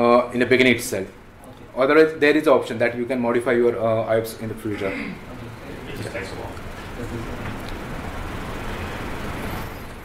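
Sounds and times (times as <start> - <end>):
low room rumble: 0.0 - 10.0
microphone hiss: 0.0 - 10.0.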